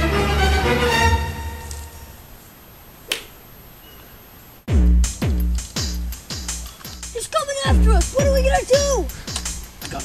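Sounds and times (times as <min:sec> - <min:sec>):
faint background noise: 0:01.3 - 0:10.0.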